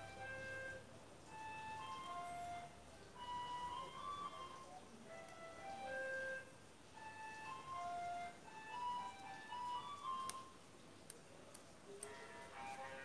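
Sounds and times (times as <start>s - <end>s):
slow simple melody: 0.0s - 10.8s, 11.9s - 13.0s.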